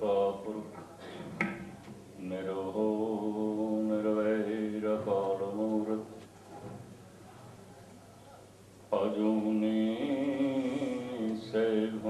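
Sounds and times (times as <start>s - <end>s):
man chanting into a microphone: 0.0s - 1.3s, 2.2s - 6.2s, 8.9s - 12.0s.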